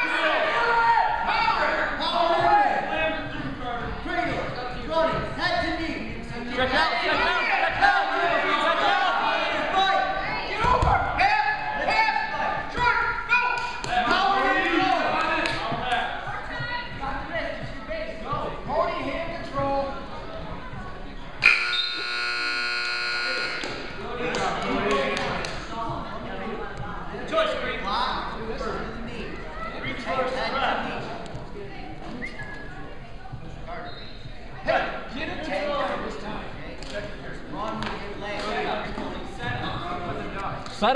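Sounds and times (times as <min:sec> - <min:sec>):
crowd and coaches shouting: 0:00.0 - 0:05.8, 0:06.6 - 0:19.1
scoreboard buzzer blast: 0:21.4 - 0:23.6.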